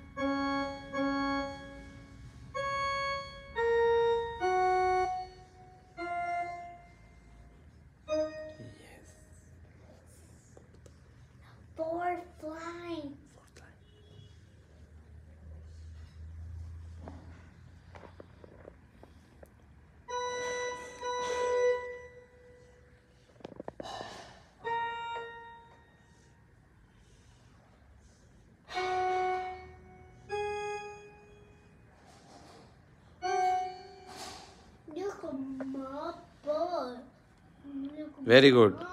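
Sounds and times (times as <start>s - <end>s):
electronic keyboard single notes: 0.0s - 7.2s, 8.0s - 8.8s, 20.1s - 22.8s, 24.6s - 26.2s, 28.7s - 31.8s, 33.2s - 34.7s.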